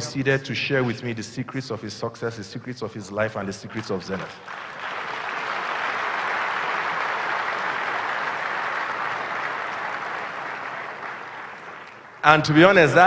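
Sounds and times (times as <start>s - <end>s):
audience applauding: 3.1s - 13.0s.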